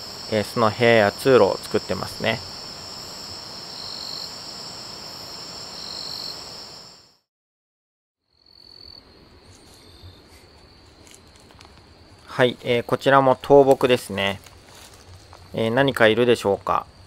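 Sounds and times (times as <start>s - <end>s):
night insects trilling: 0.0s - 7.2s.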